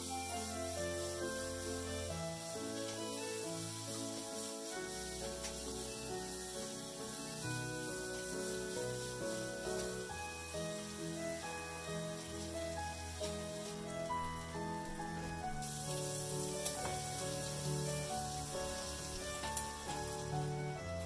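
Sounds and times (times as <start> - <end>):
melodic background music: 0.0 - 21.0
sausages sizzling in a skillet: 0.0 - 21.0.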